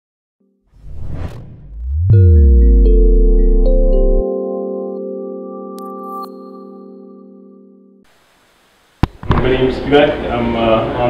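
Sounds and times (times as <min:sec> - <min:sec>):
whoosh sound effect: 0:00.8 - 0:03.5
low rumble: 0:00.8 - 0:04.2
intro music chord: 0:01.6 - 0:08.0.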